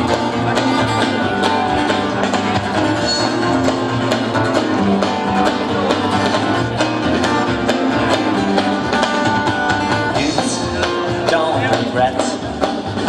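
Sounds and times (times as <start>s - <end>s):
electric bass: 0.0s - 13.0s
steady drum beat: 0.0s - 13.0s
strummed acoustic guitars: 0.0s - 13.0s.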